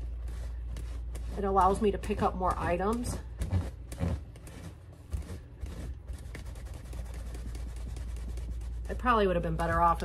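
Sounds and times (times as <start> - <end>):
scratchy scrubbing strokes: 0.0 - 9.9.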